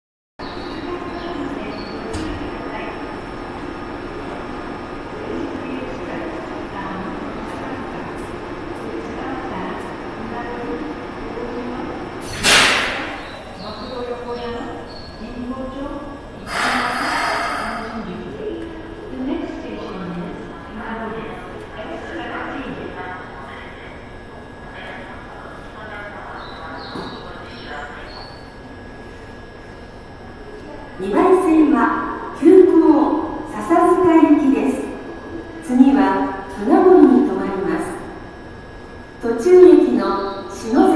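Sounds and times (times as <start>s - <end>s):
subway train humming: 0.4s - 40.9s.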